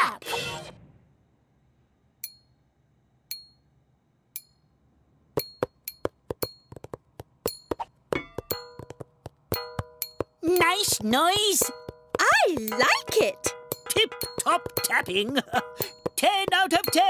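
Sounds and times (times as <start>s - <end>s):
drumsticks tapping: 5.4s - 17.0s
ringing pitched notes: 9.5s - 17.0s.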